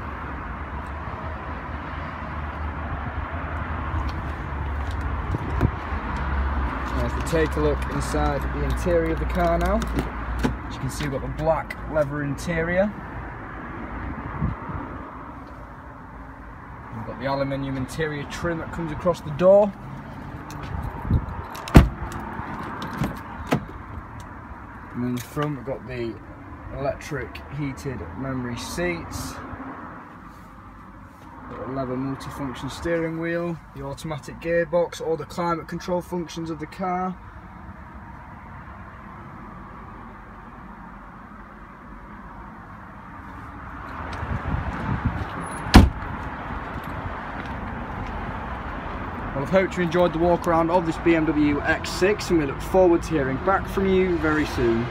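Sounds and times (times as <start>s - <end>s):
outdoor background noise: 0.0s - 54.9s
car door opening: 9.7s - 11.1s, 20.5s - 23.8s, 45.2s - 46.2s
car door shutting thud: 21.6s - 22.0s, 45.6s - 46.1s.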